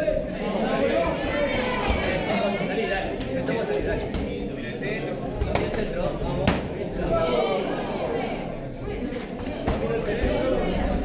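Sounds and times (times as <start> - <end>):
crowd talking and calling: 0.0 - 11.0.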